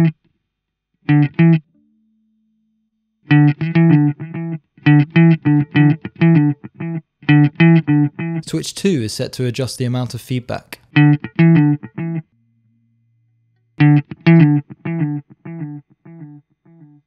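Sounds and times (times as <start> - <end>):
clean electric guitar with delay: 3.3 - 8.4.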